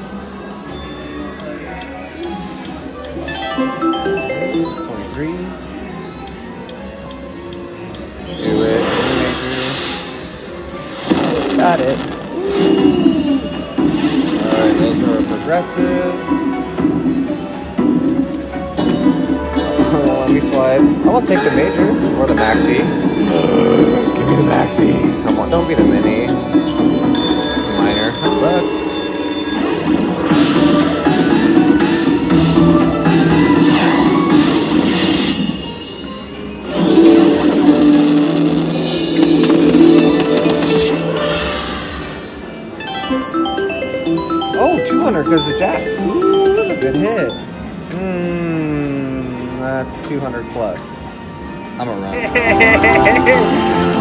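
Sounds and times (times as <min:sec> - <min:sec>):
slot machine music and effects: 0:02.8 - 0:05.9, 0:08.1 - 0:47.9, 0:49.6 - 0:54.0.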